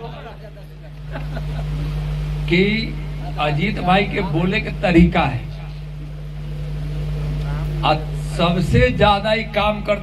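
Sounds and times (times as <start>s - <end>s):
steady low hum: 0.0s - 10.0s
people chatting: 2.5s - 5.8s, 7.4s - 10.0s.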